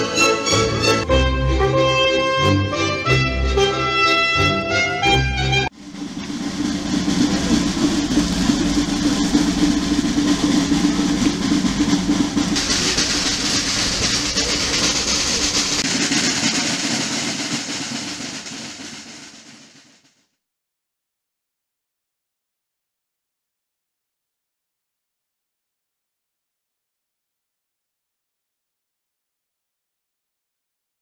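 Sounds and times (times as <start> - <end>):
snare drum roll: 5.6 - 20.3.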